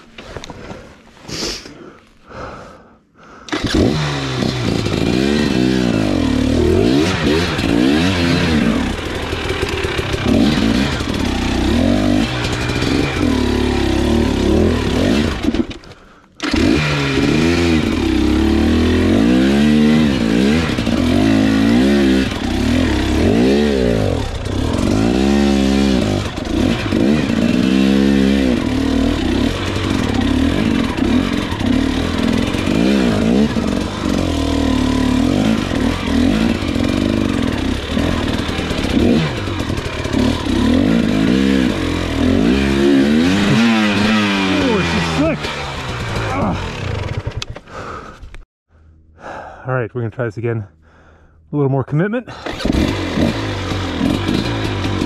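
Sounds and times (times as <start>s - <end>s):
motorcycle engine revving: 3.5s - 48.0s, 52.3s - 55.0s.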